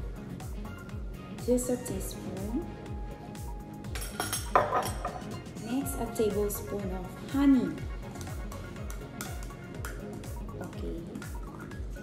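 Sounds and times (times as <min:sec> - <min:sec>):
music with a steady beat: 0:00.0 - 0:12.0
clink of kitchenware: 0:04.0 - 0:05.3.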